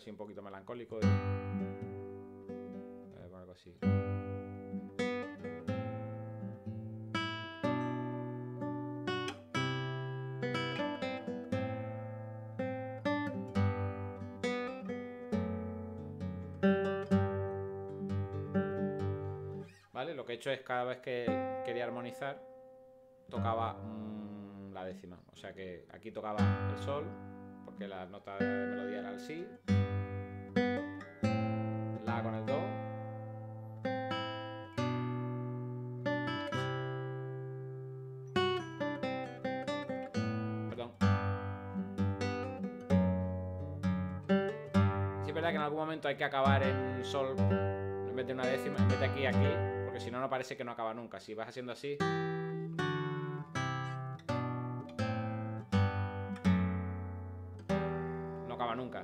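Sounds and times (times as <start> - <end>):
classical guitar playing slowly: 1.0 - 3.2, 3.8 - 19.9, 21.2 - 24.8, 26.2 - 50.4, 52.0 - 59.0.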